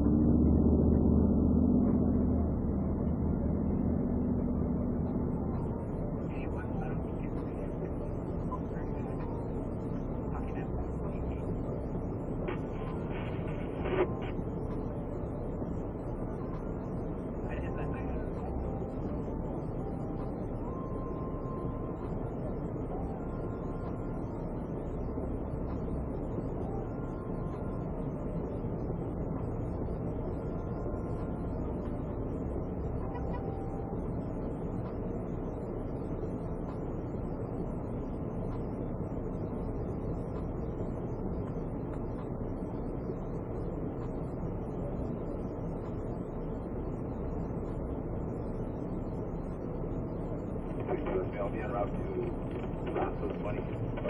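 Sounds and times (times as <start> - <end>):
car cabin low rumble: 0.0 - 54.0.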